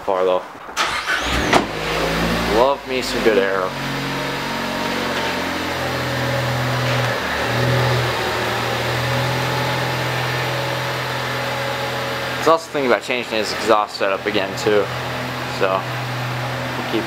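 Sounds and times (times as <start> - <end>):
car engine at low revs: 1.2 - 17.0.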